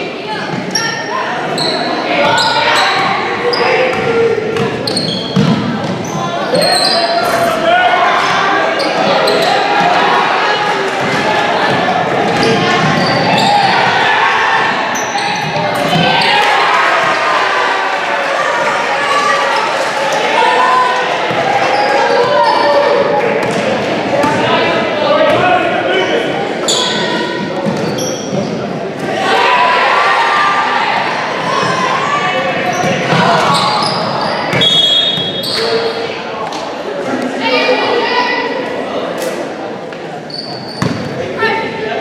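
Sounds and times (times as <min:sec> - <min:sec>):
echoing voices: 0:00.0 - 0:42.0
basketball bouncing on court: 0:03.9 - 0:06.1, 0:40.8 - 0:41.1.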